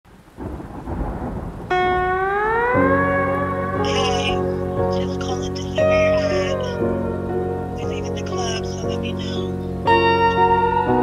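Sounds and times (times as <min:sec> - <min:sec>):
rain: 0:00.1 - 0:11.0
rumbling thunder: 0:00.3 - 0:04.8.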